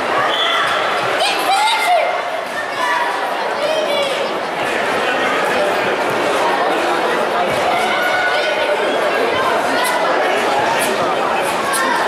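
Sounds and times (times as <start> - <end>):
many people talking echoing: 0.0 - 12.0.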